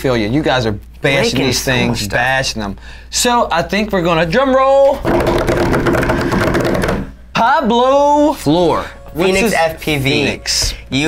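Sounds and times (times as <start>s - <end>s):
hands drumming on wooden tabletop: 5.0s - 7.2s.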